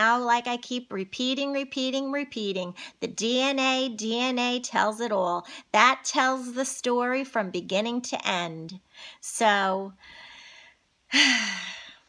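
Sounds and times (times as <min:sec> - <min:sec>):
woman breathing in: 0:10.0 - 0:12.0
woman sighing: 0:11.1 - 0:12.0.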